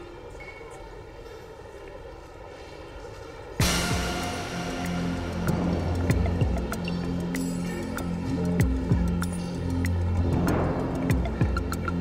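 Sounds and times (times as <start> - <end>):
loud musical hit: 3.6 - 7.4
ambient soundtrack wash: 3.6 - 12.0.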